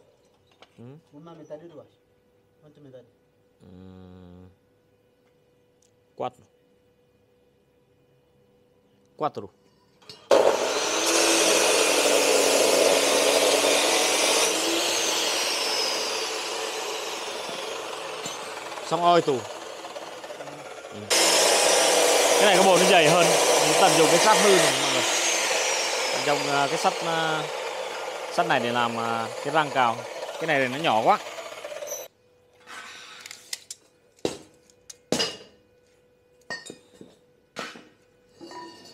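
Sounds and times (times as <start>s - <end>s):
cut-off saw grinding steel: 10.3s - 32.1s.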